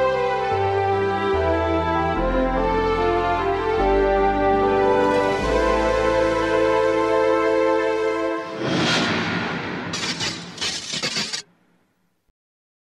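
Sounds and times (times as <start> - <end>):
tv theme music: 0.0 - 11.0.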